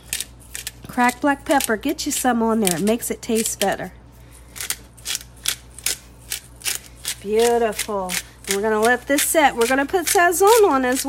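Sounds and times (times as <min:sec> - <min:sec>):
pepper grinder grinding: 0:00.0 - 0:11.0.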